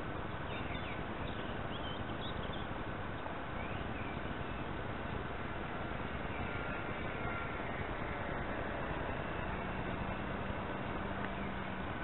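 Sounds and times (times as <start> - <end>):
model airplane motor whine: 4.2 - 12.0
steady rushing noise: 4.2 - 12.0.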